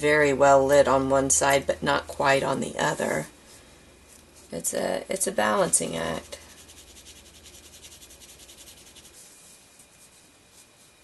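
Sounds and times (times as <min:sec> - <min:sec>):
pencil shading on paper: 0:06.6 - 0:09.4.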